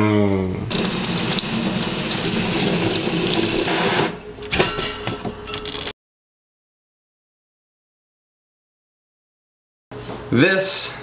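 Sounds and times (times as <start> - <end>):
water running from tap: 0.7 - 4.2.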